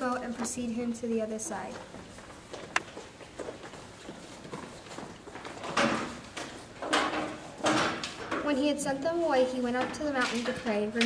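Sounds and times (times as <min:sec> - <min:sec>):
footsteps on hard floor: 0:01.4 - 0:07.4.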